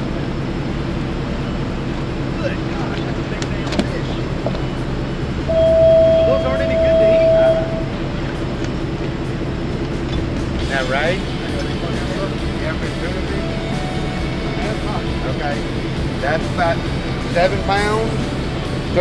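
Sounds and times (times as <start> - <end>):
boat engine idling: 0.0 - 19.0
loud steady high tone: 4.0 - 8.6, 9.4 - 19.0.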